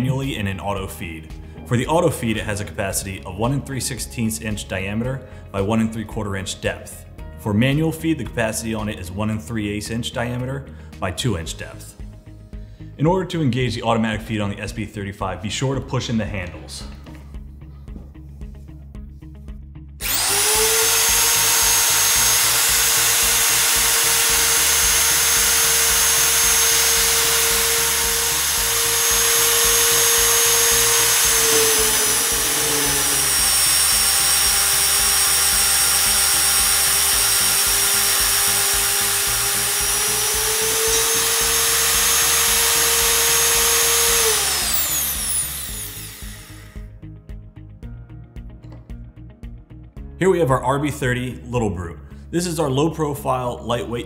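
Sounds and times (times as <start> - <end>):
cutter drilling through steel: 20.0 - 46.8
drill press motor whine: 20.0 - 46.8.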